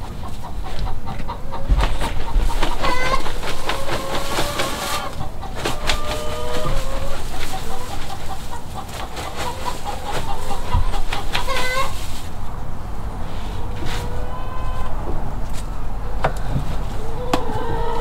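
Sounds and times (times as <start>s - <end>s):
hens clucking: 0.0s - 18.0s
pine needles rustling: 2.5s - 14.2s.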